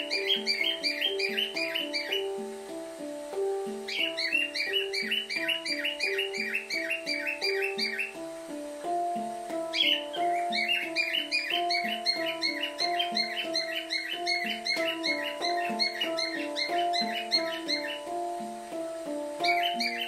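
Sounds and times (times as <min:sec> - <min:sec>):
handpan ringing steel notes: 0:00.0 - 0:20.0
rapid bird chirping: 0:00.0 - 0:20.0.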